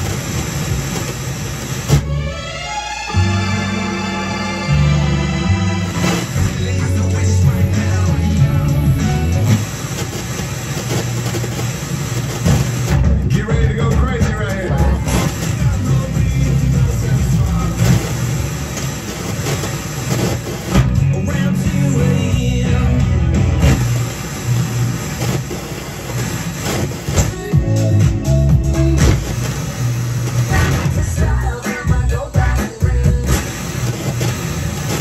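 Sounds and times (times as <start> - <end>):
radio static hiss: 0.0 - 2.0, 5.8 - 13.0, 14.8 - 20.9, 23.6 - 27.5, 29.0 - 35.0
broken radio broadcast: 0.0 - 2.1, 5.7 - 22.1, 23.5 - 27.7, 28.7 - 35.0.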